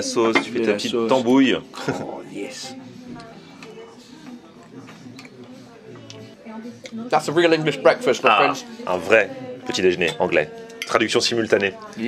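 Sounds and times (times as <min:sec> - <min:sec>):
murmur of voices: 0:00.0 - 0:12.0
quiet background music: 0:00.0 - 0:12.0.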